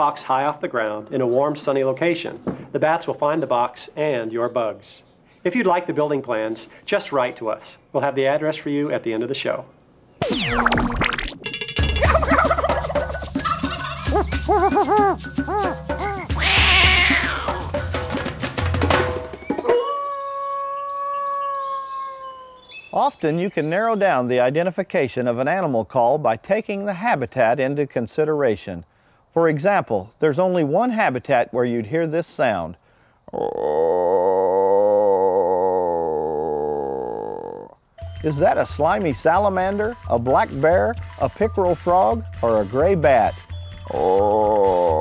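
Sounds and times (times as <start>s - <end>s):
drum hits: 11.4s - 19.8s
frog calling: 12.0s - 17.8s
animal call falling in pitch: 14.1s - 17.7s, 19.5s - 22.6s.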